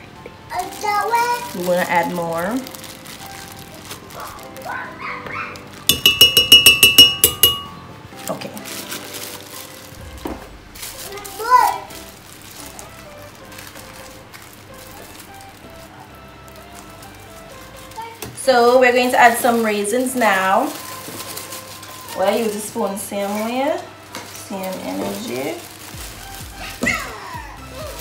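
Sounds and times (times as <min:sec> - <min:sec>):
ringing clinks on glass jar: 0:05.9 - 0:07.8.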